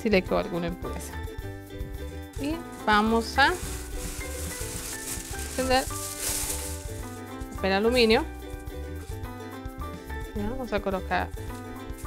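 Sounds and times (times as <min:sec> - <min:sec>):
background music: 0:00.0 - 0:12.0
aluminium foil crinkling: 0:02.1 - 0:08.1, 0:11.4 - 0:12.0.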